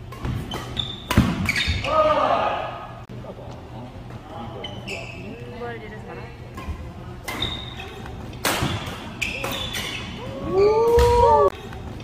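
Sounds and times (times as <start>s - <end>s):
shoe squeaks on wooden court: 0.2s - 1.9s, 4.6s - 5.4s, 7.3s - 10.2s.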